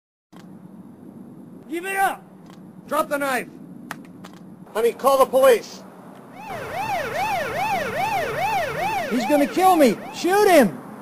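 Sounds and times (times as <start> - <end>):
police siren yelp: 6.3 - 10.8.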